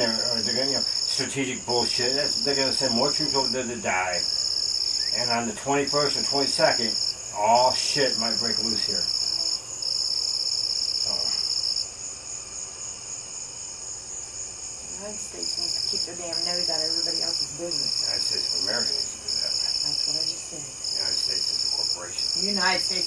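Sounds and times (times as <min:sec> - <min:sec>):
insects trilling: 0:00.0 - 0:23.0.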